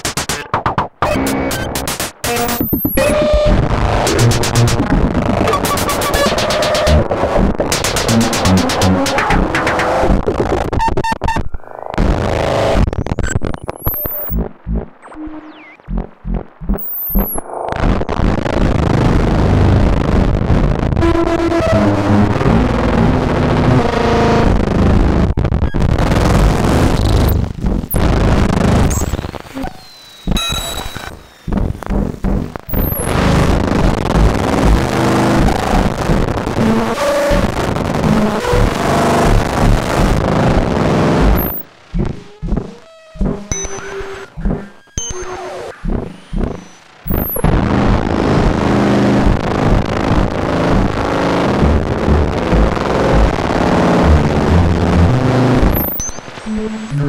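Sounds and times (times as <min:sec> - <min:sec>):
low synth bursts: 0:13.8 - 0:19.0, 0:30.3 - 0:45.1, 0:45.7 - 0:57.0.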